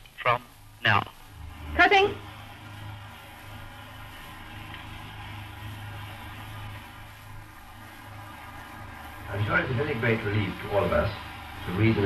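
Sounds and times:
low hum: 0.0 - 12.0
hiss and surface noise: 0.9 - 12.0.

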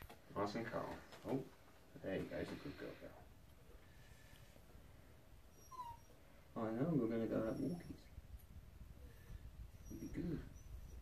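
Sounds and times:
dog whimpering: 5.5 - 6.2, 7.3 - 8.0, 9.8 - 11.0.

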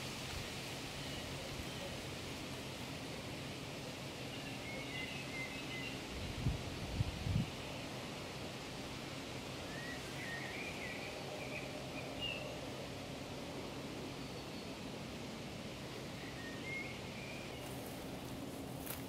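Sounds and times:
outdoor background noise: 0.0 - 19.0
faint bird chirps: 4.3 - 6.2.

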